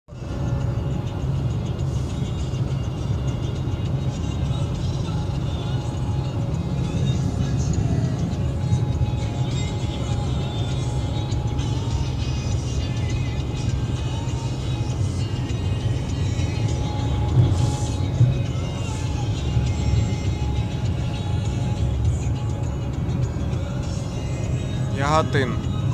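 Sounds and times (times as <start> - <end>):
music playing in car: 0.1 - 25.9
road and tyre rumble: 0.1 - 25.9.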